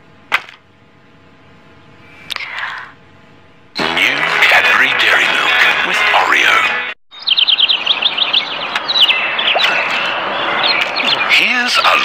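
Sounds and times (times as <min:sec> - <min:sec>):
voice: 0:03.8 - 0:06.8, 0:11.3 - 0:12.0
rapid high bird-like chirps: 0:07.1 - 0:12.0.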